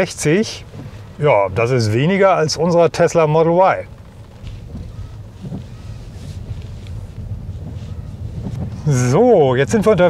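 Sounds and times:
tyre and road noise: 0.0 - 10.0.

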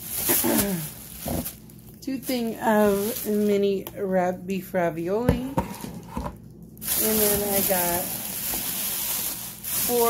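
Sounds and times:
groceries rustling: 0.0 - 10.0.

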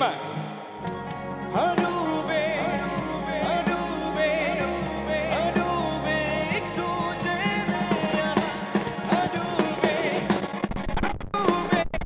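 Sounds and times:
live band playing: 0.0 - 11.9
drums keeping a steady beat: 0.8 - 12.0
man singing: 1.4 - 12.0.

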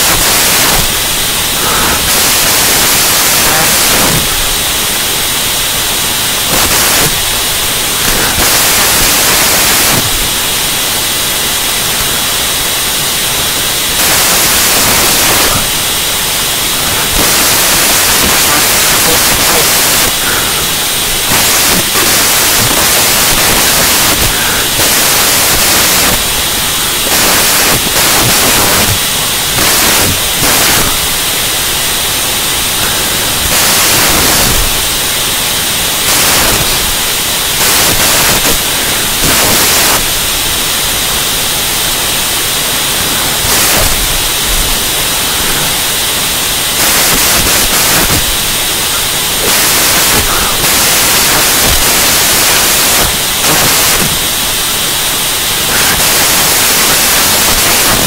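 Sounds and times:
faint high steady whine: 0.0 - 58.0
loud electronic static hiss: 0.0 - 58.0.

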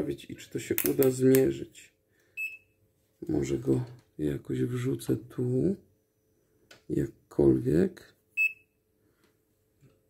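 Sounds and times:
multimeter beep: 2.4 - 2.8, 8.4 - 8.7.

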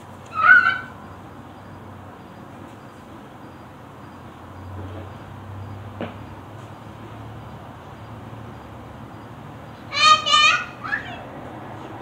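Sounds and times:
faint outdoor hum: 0.0 - 12.0
toddler squealing: 0.3 - 1.0, 9.9 - 11.2.

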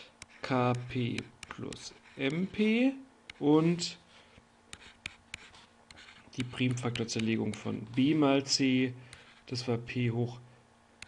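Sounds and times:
pen tapping tablet: 0.0 - 3.5, 4.7 - 8.3
pen scratching on tablet: 0.2 - 3.9, 4.7 - 8.5, 9.1 - 9.6.

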